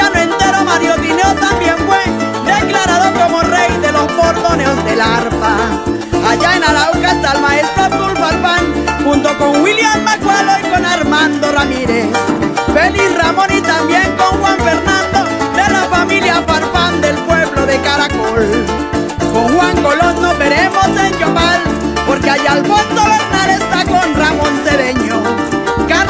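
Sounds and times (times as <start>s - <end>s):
harp with band playing folk music: 0.0s - 26.0s.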